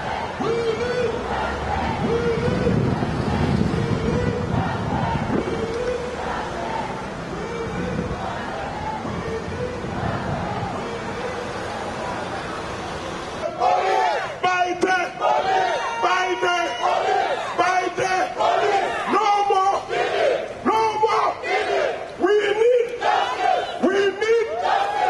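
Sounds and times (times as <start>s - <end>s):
marching protest crowd: 0.0s - 25.0s
man shouting into a microphone: 0.4s - 1.2s, 2.0s - 2.9s, 7.3s - 8.1s, 13.4s - 19.9s, 20.6s - 21.4s, 22.2s - 23.0s, 23.7s - 24.6s.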